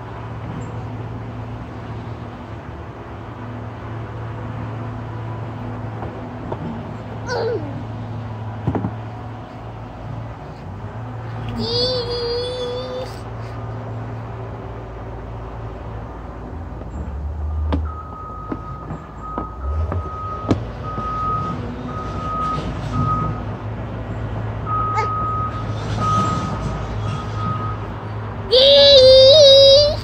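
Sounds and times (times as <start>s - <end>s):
low engine rumble: 0.0s - 30.0s
vehicle reversing alarm beeping: 17.8s - 23.6s, 24.6s - 28.0s.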